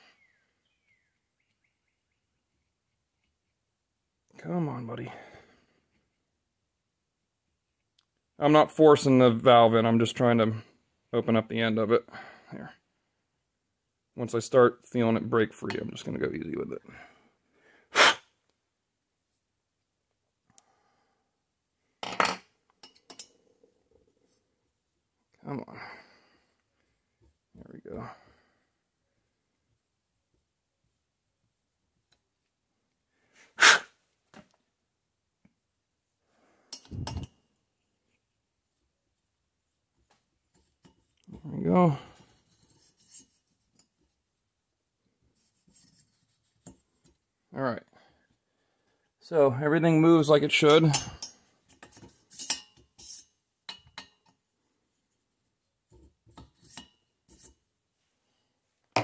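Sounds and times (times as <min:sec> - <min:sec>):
loud short sneeze: 0:17.9 - 0:18.3, 0:33.6 - 0:33.9
metal tool clinking on metal: 0:22.0 - 0:23.4, 0:50.7 - 0:54.4.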